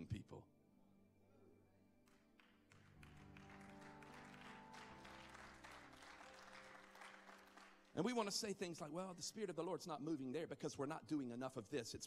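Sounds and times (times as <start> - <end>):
light scattered clapping: 2.1 - 8.3.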